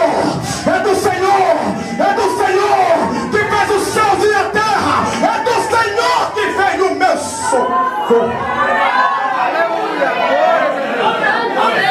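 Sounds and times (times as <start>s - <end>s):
overlapping chatter of crowd: 0.0s - 11.9s.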